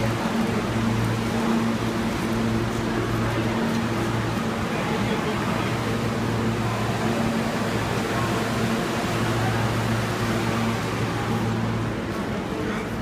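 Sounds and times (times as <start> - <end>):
air-conditioning noise: 0.0 - 13.0
subway train low hum: 0.0 - 13.0.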